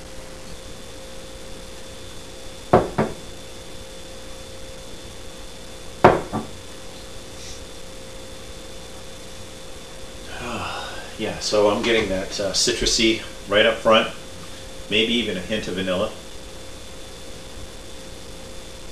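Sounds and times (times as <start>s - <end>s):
faint steady hum: 0.0s - 18.9s
glass knocking on wooden table: 2.7s - 3.2s, 6.0s - 6.6s.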